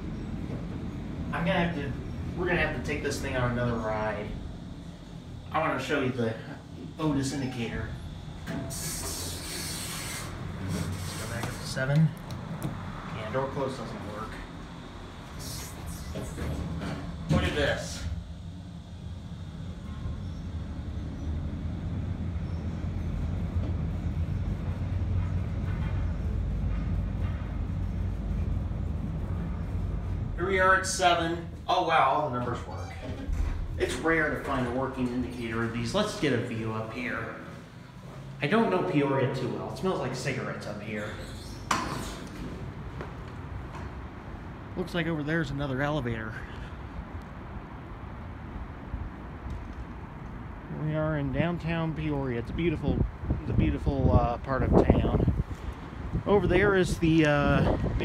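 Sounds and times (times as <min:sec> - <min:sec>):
elevator rumbling: 0:00.0 - 0:11.3, 0:12.1 - 0:58.0
distant city traffic: 0:00.0 - 0:58.0
wind: 0:00.0 - 0:58.0.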